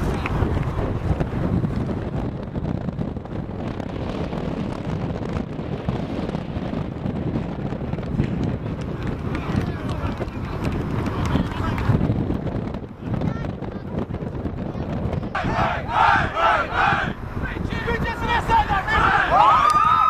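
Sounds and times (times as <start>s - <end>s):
wind rumbling on microphone: 0.0s - 20.0s
overlapping voices talking: 8.6s - 19.8s.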